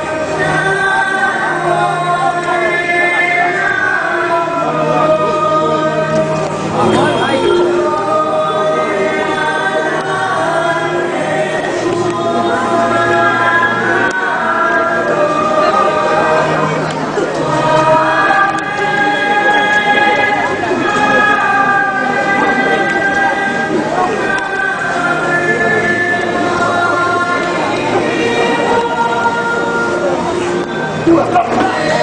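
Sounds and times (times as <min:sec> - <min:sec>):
group singing a hymn: 0:00.0 - 0:32.0.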